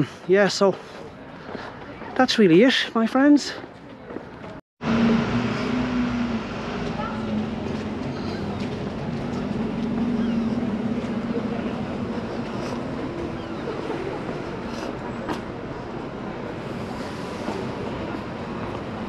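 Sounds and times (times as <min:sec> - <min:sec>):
vehicle engine humming: 0:04.8 - 0:19.0.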